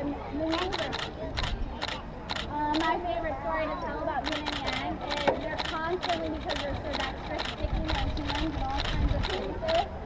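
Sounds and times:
quick regular clicking: 0:00.5 - 0:02.9, 0:04.2 - 0:09.8.

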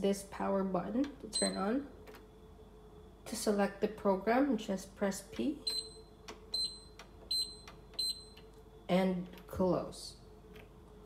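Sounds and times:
dishwasher control panel beeping: 0:01.3 - 0:01.7, 0:05.7 - 0:08.5.

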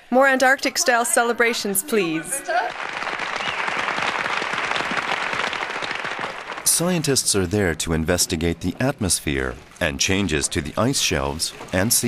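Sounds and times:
crowd applauding: 0:02.4 - 0:08.0.

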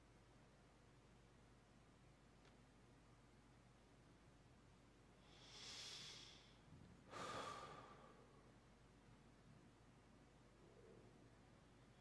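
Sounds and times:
person breathing slowly: 0:05.2 - 0:08.5.

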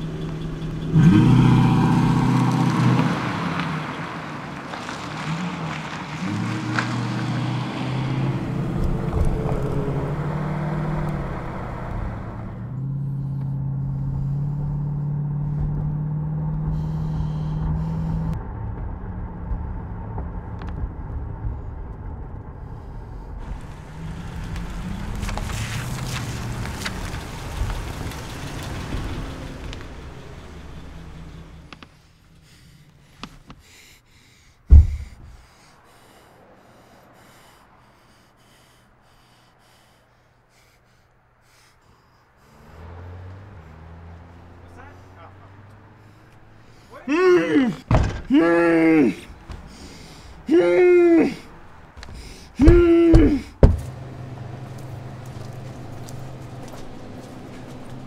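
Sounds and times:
car engine accelerating: 0:00.0 - 0:33.2, 0:42.4 - 0:48.4, 0:51.7 - 0:58.0.

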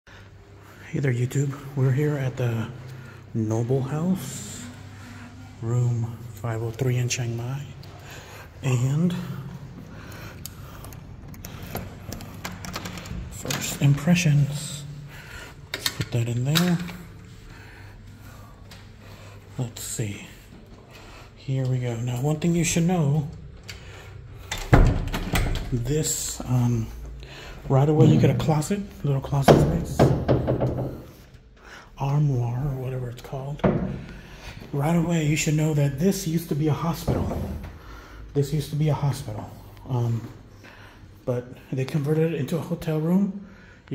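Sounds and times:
key turning in lock: 0:10.8 - 0:13.7.

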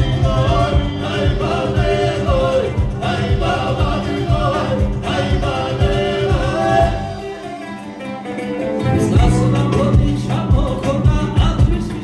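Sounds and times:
ensemble singing in harmony: 0:00.0 - 0:12.0
instrumental accompaniment: 0:00.0 - 0:12.0.

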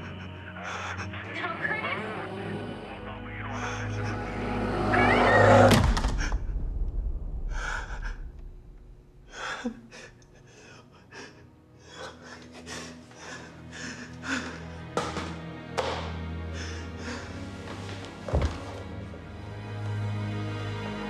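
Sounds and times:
horror film score: 0:00.0 - 0:21.0.

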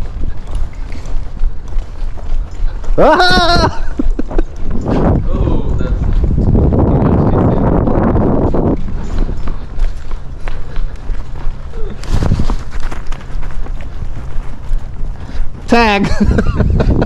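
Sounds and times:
hoofbeats in sand: 0:00.0 - 0:17.0
rushing wind noise: 0:00.0 - 0:17.0.

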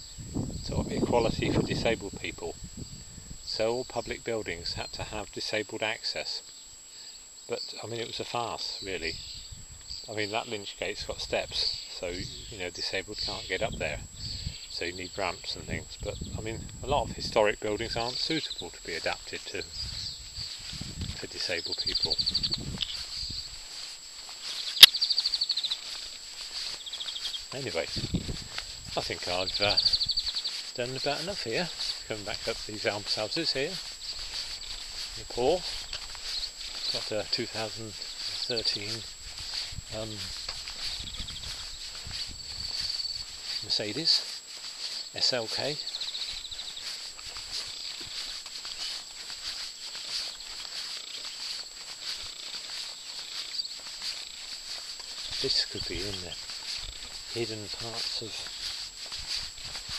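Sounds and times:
high-pitched background hiss: 0:00.0 - 0:59.9
footsteps walking: 0:14.7 - 0:59.9
small animal chirping trills: 0:21.6 - 0:28.2, 0:28.9 - 0:43.7, 0:45.8 - 0:58.8.

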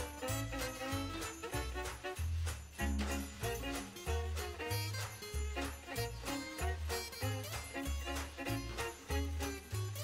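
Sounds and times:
jingle bells shaken: 0:00.0 - 0:10.0.

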